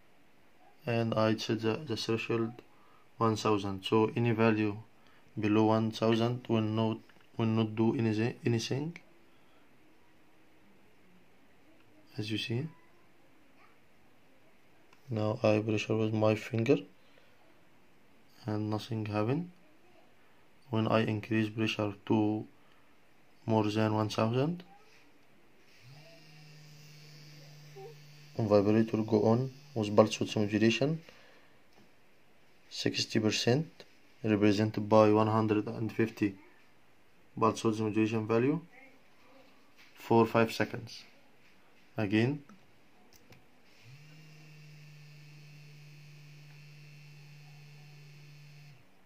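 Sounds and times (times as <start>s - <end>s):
vibration motor buzzing: 25.7s - 30.5s, 43.7s - 48.9s.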